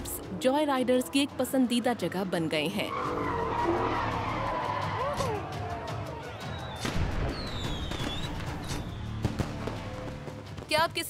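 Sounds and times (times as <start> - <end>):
engines rumbling: 0.0 - 6.2
car tyres squealing: 2.6 - 5.4.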